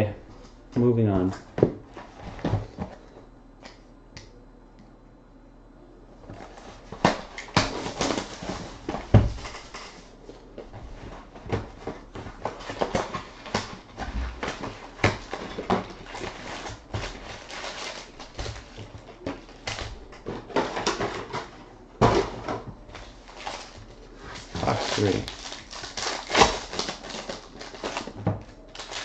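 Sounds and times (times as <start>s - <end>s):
card packs rustling and scraping: 1.2s - 3.0s, 6.3s - 29.0s.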